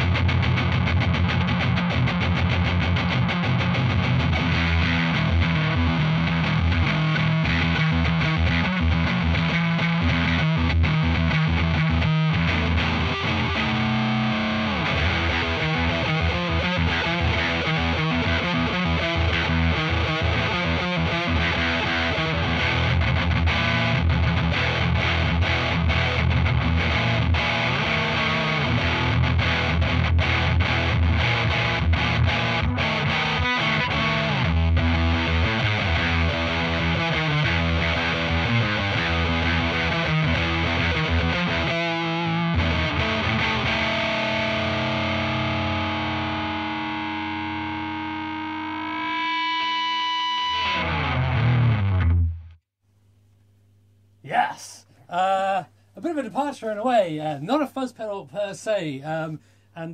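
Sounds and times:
distorted electric guitar riffs: 0:00.0 - 0:52.6.

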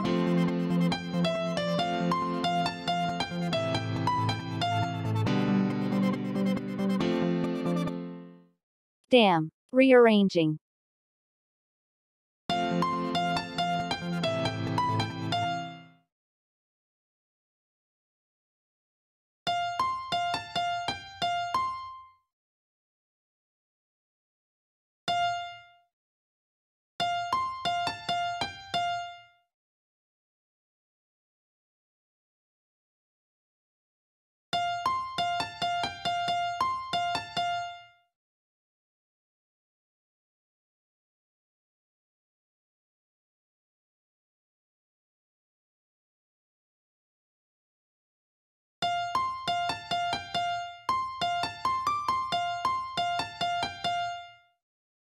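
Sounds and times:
synthesised piano melody: 0:00.0 - 0:08.5, 0:12.5 - 0:16.0, 0:34.6 - 0:37.9, 0:48.8 - 0:54.4.

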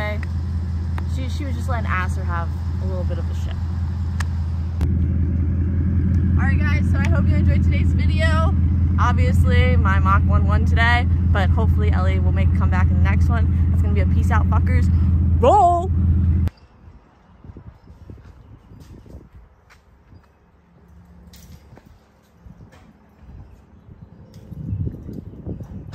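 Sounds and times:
car engine idling: 0:00.0 - 0:16.5.

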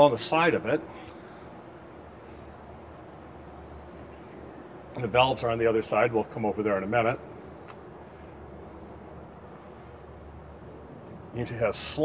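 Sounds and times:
room hum with faint hiss: 0:00.0 - 0:12.0.

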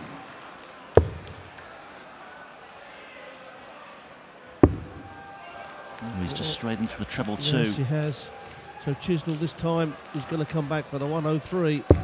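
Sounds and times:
murmur of large hall: 0:00.0 - 0:12.0.

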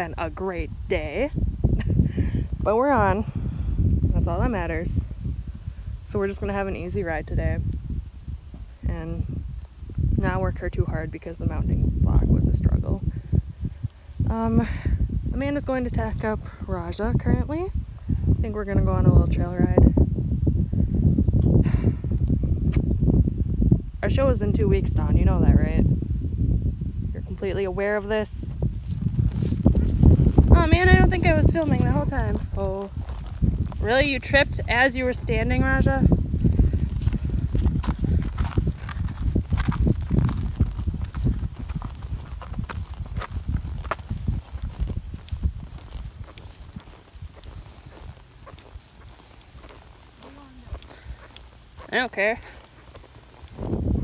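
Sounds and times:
wind buffeting microphone: 0:00.0 - 0:54.0
hooves on gravel: 0:28.2 - 0:54.0.

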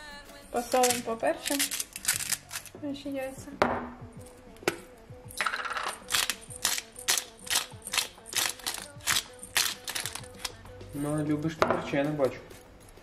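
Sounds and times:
pepper mill grinding: 0:00.6 - 0:02.8, 0:05.4 - 0:10.6.

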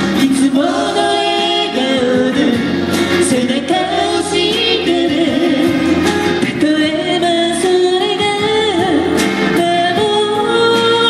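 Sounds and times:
electric guitar: 0:00.0 - 0:11.0
woman singing pop song: 0:00.0 - 0:11.0.

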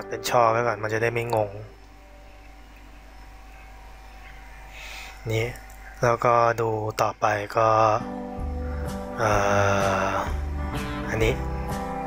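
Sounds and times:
faint constant tone: 0:00.0 - 0:12.0
low background hum: 0:00.0 - 0:12.0
even hiss: 0:00.2 - 0:12.0.

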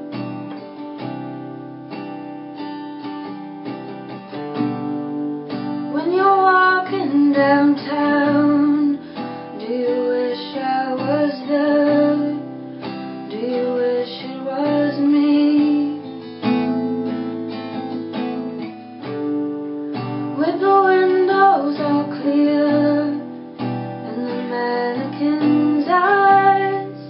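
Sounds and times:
acoustic guitar: 0:00.0 - 0:27.0
woman singing: 0:05.8 - 0:18.8, 0:20.0 - 0:27.0.

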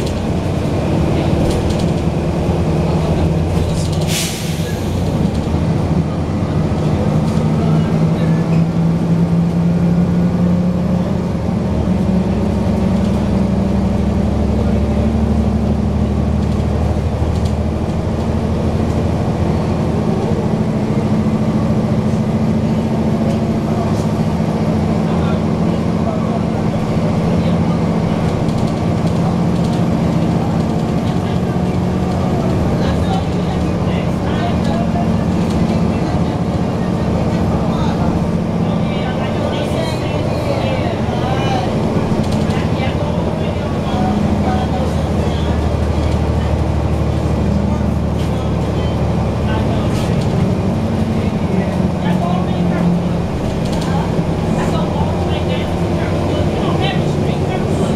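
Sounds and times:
bus diesel engine droning: 0:00.0 - 0:57.9.

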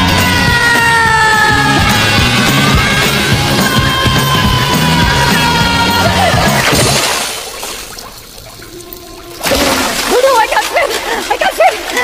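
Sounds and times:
splash into water: 0:06.2 - 0:12.0.

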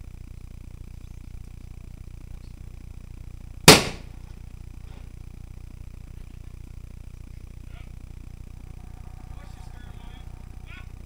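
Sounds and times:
loud sharp bang: 0:03.7 - 0:04.1.

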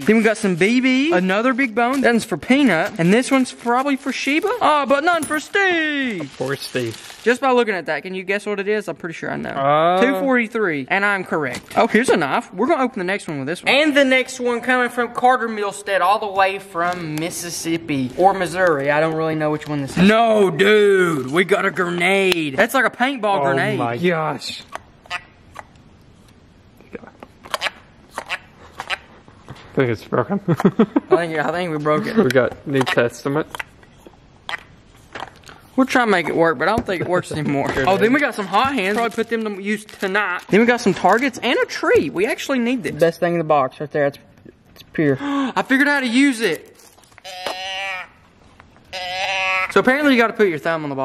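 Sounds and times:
novelty toy animal call: 0:47.2 - 0:48.3, 0:48.9 - 0:49.8.

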